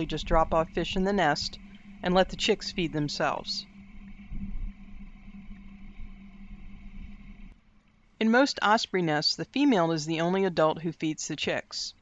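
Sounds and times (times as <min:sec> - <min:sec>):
low background rumble: 0:00.0 - 0:10.9
faint steady hum: 0:00.0 - 0:12.0.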